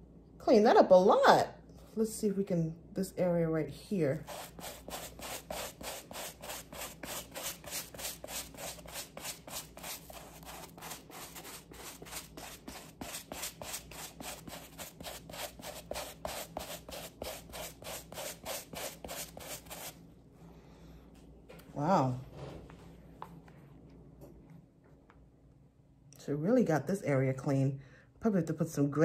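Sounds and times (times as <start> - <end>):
brush scrubbing suede: 4.2 - 20.0.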